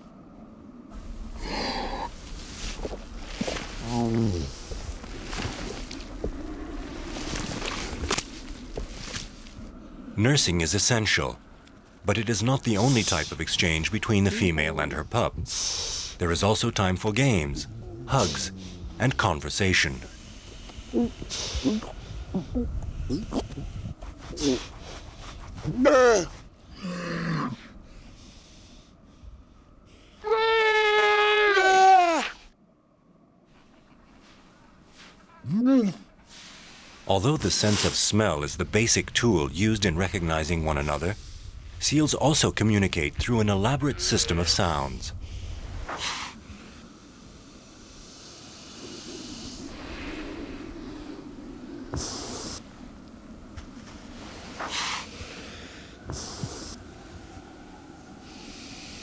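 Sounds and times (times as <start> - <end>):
seal shuffling on snow: 1.0 - 9.7, 23.6 - 26.6, 44.1 - 59.0.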